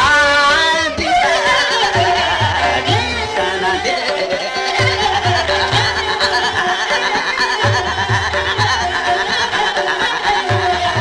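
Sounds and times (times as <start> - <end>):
fast wavering melodic line: 0.9 - 11.0.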